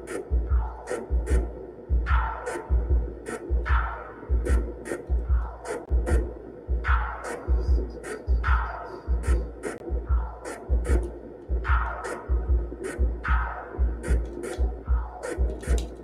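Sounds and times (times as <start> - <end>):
deep bass pulse: 0.0 - 15.8.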